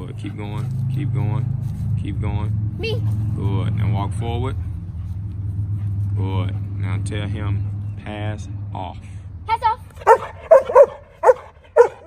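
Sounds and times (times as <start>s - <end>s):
dog barking: 10.0s - 12.0s.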